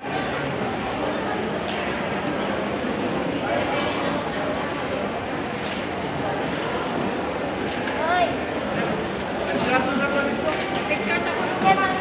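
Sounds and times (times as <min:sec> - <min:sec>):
crowd of voices talking: 0:00.0 - 0:12.0.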